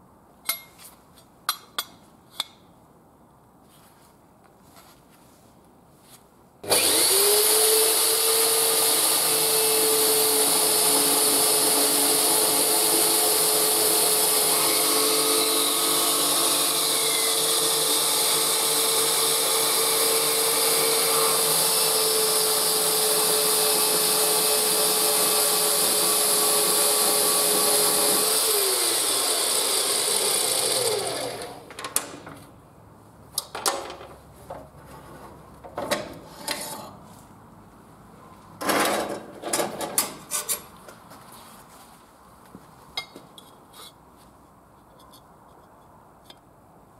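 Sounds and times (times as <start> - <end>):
blade cutting metal tube: 6.6 - 31.6
bandsaw motor whine: 6.6 - 31.7
motor winding down: 6.7 - 31.7.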